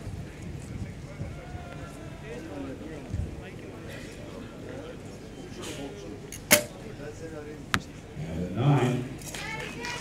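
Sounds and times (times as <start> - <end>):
arrow striking target: 6.4 - 6.8.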